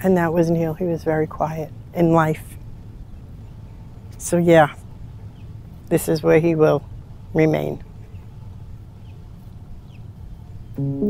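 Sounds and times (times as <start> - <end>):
low outdoor rumble: 0.0 - 11.0
plucked string chord: 10.8 - 11.0.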